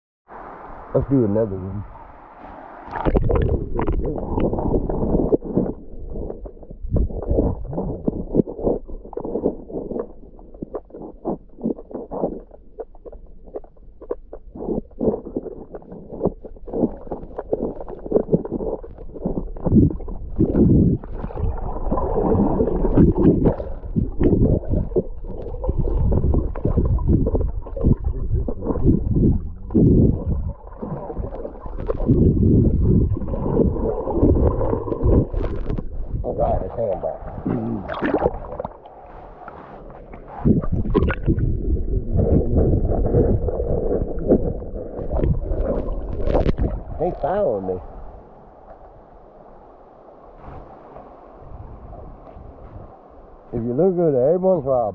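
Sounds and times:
underwater sloshing and gurgling: 0:00.3 - 0:54.9
dull underwater thumps: 0:02.9 - 0:38.9, 0:40.0 - 0:47.5.

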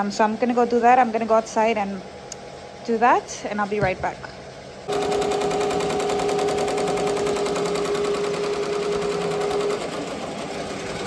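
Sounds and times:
machine hum: 0:00.0 - 0:11.0
embroidery machine rattling: 0:04.0 - 0:11.0.

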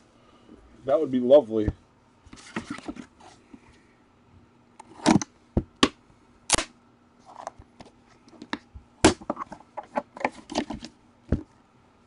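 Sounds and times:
cardboard box knocks and snaps: 0:09.0 - 0:09.4.

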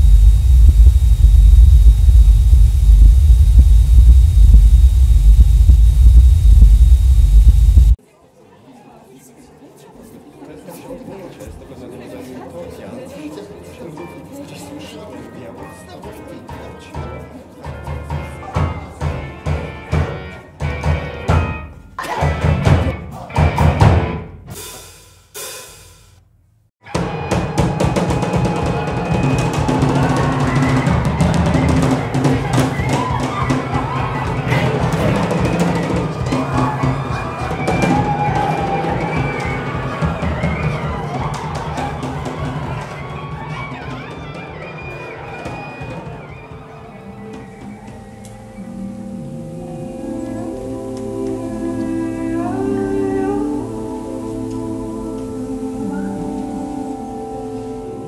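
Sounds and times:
dense drumming: 0:00.0 - 0:08.0
voices: 0:27.0 - 0:58.0.

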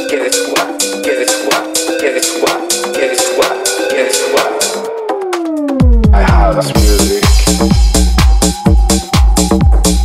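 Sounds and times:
heavy kick drum and bass: 0:05.6 - 0:10.0
hi-hats: 0:06.8 - 0:10.0.

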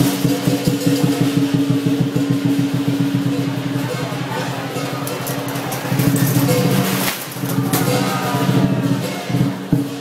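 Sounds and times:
fast drum roll: 0:00.0 - 0:10.0.

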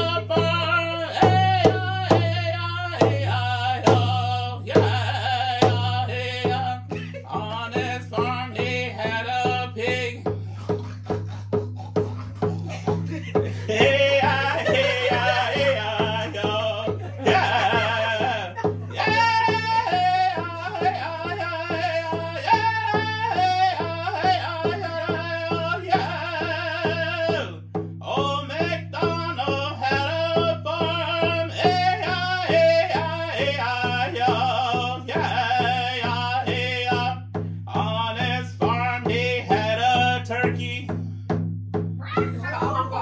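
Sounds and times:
man singing vocables: 0:00.0 - 0:41.0, 0:42.3 - 0:43.0
music with steady beat: 0:00.0 - 0:43.0.

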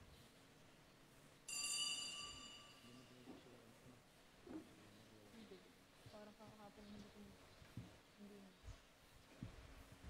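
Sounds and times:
small bell ringing: 0:01.5 - 0:03.2.

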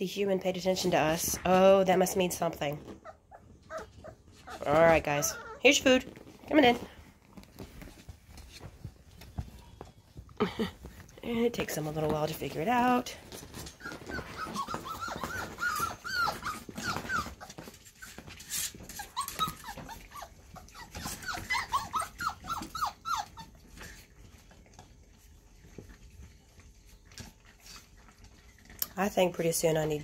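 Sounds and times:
puppies whining and squeaking: 0:00.8 - 0:11.1, 0:13.2 - 0:28.8
faint clicking eating noises: 0:13.2 - 0:30.0.

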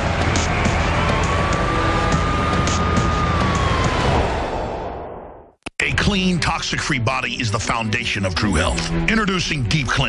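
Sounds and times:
dramatic bumper music: 0:00.0 - 0:05.3
dense rushing noise: 0:00.7 - 0:05.6
gliding siren-like tone: 0:00.9 - 0:05.5.

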